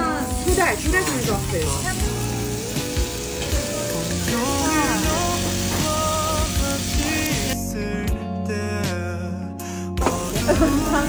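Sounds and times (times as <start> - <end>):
meat sizzling on grill pan: 0.0 - 7.6, 10.0 - 11.0
background music: 0.0 - 11.0.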